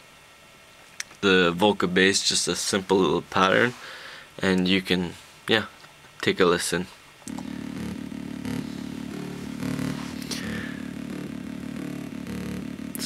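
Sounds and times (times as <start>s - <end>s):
muffled synthesizer bass pattern: 7.3s - 13.0s.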